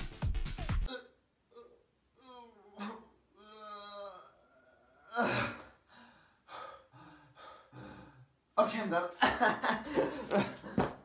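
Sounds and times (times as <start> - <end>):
man straining effort sound: 0.9 - 5.8
man gasping heavily: 5.1 - 8.4.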